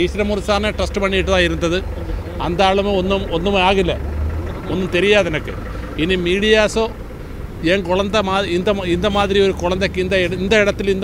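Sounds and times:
man speaking: 0.0 - 7.0, 7.6 - 11.0
steady low rumble: 0.0 - 11.0.

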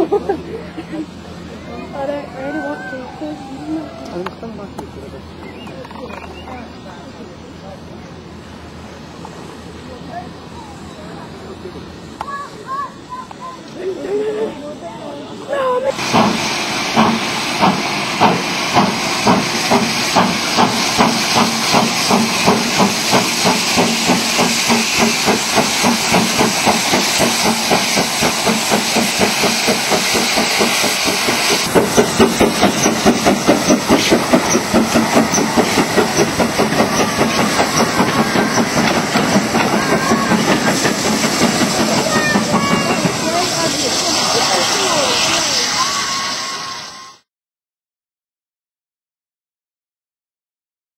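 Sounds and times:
steam hissing: 6.6 - 47.2
steam locomotive exhaust beats: 15.6 - 47.2.

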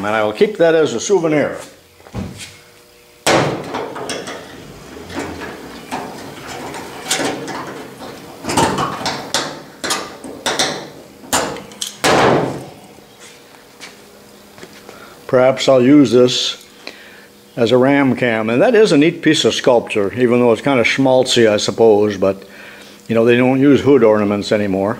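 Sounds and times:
metal knocks: 3.3 - 12.7.

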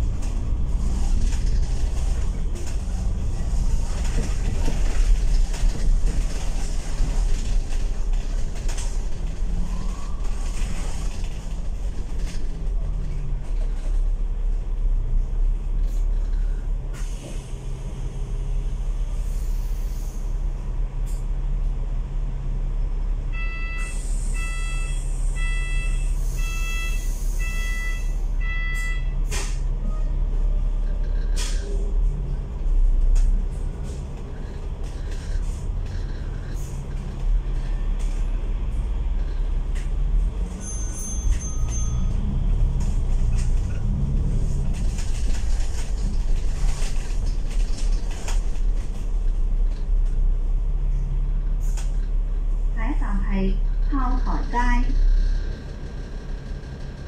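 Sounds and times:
bus engine humming: 0.0 - 57.0.

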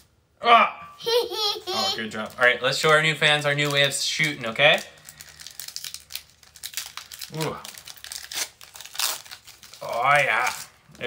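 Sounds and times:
wrapper crinkling and tearing: 2.0 - 11.0.

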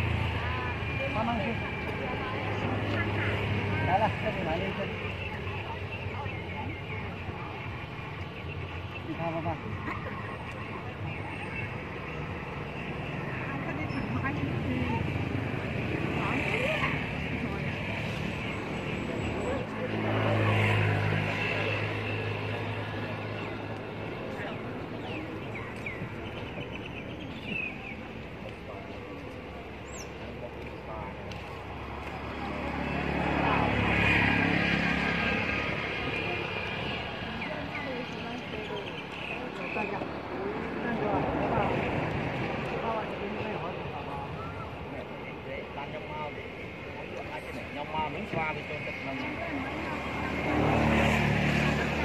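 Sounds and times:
indistinct voices talking: 0.0 - 52.0
motor vehicle engine noise: 0.0 - 52.0.

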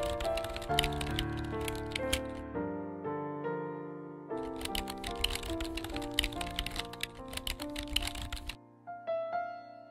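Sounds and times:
keyboard typing clicks: 0.0 - 2.4, 4.4 - 8.6
background music: 0.0 - 9.9.

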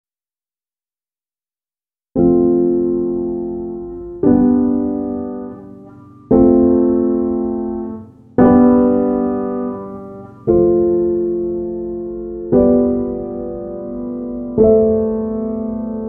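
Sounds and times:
slow piano chords: 2.2 - 16.0.

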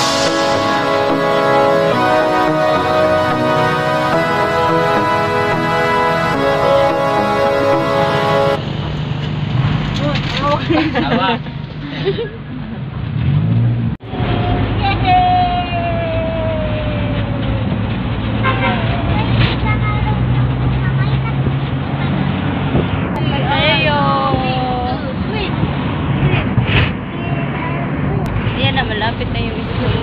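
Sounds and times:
passengers talking: 0.0 - 8.6, 14.0 - 30.0
vehicle engine droning: 0.0 - 30.0.

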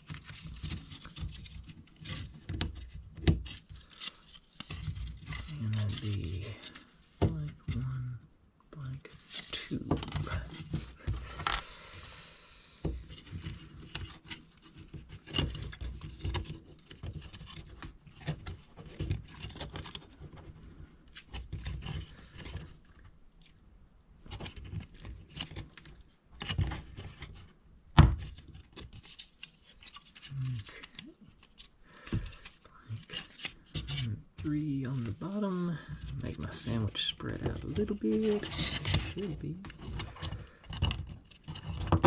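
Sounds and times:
wood parts clicking and rubbing: 0.0 - 8.2, 9.1 - 11.6, 12.8 - 23.6, 24.2 - 42.0.

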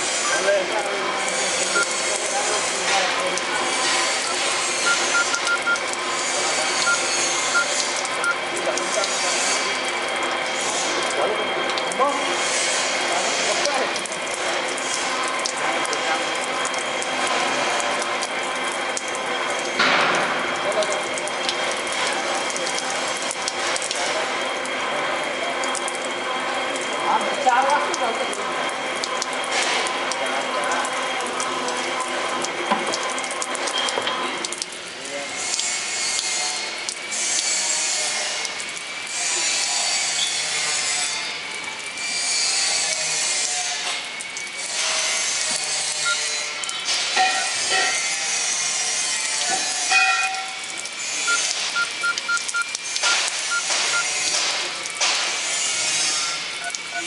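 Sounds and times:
constant machine hum: 0.0 - 57.0
water jets spraying in a pipe: 0.0 - 57.0.

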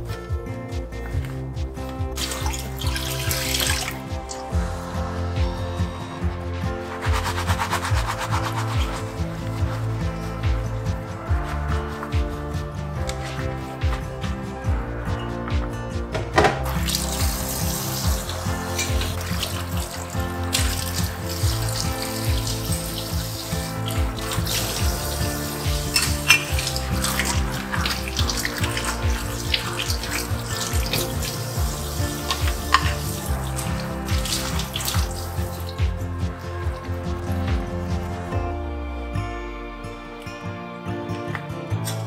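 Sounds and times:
background music: 0.0 - 42.0
faucet running into metal sink: 2.2 - 4.1, 16.7 - 35.9
dishes clinking: 23.9 - 34.8.

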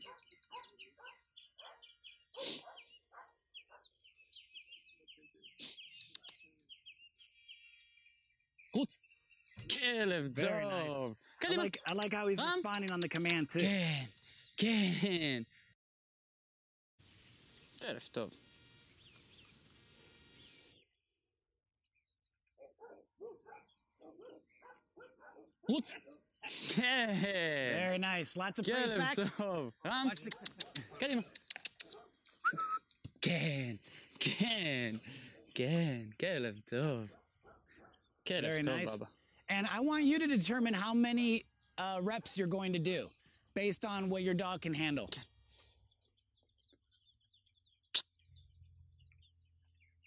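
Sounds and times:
dog barking: 0.0 - 4.0, 22.6 - 25.8, 30.2 - 32.2, 37.1 - 38.0
songbird chirping: 0.0 - 14.6, 18.4 - 21.0, 21.8 - 33.8, 34.8 - 50.0
sharp clicks: 5.9 - 6.4, 11.7 - 13.6, 30.2 - 32.4.

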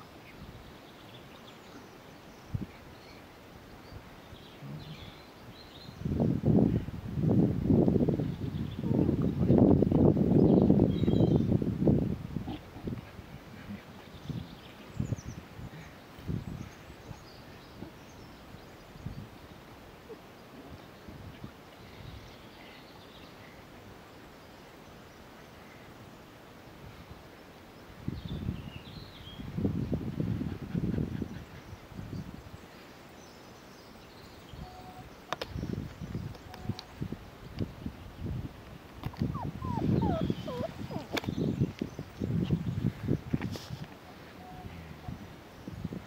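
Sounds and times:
wind buffeting microphone: 3.8 - 19.4, 28.0 - 32.6, 35.4 - 46.0
faint bird chirps: 31.2 - 37.0.

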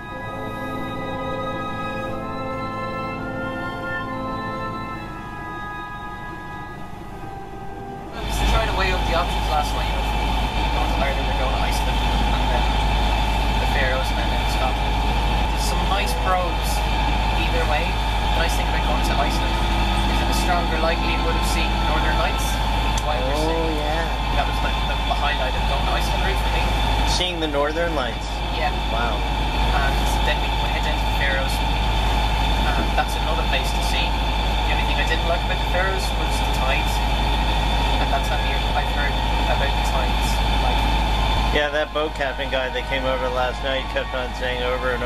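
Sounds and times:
diesel engine droning: 0.0 - 45.0
orchestral music: 0.0 - 45.0
people talking: 8.2 - 31.8, 32.6 - 37.1, 37.9 - 40.9, 41.5 - 45.0.

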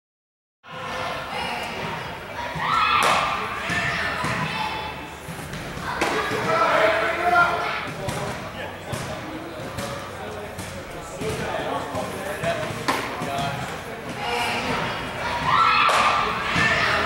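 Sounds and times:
players talking in echoing hall: 0.7 - 17.0.

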